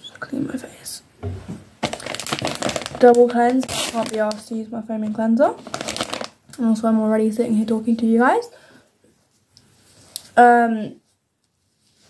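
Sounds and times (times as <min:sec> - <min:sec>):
soft thump: 0:01.2 - 0:01.7
rapid crinkling and rustling: 0:01.8 - 0:04.6, 0:05.5 - 0:06.4.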